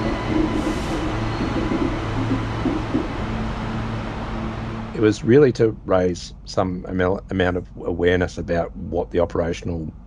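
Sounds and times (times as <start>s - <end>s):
train wheels rumbling on track: 0.0s - 6.6s
steady low hum: 0.0s - 10.0s.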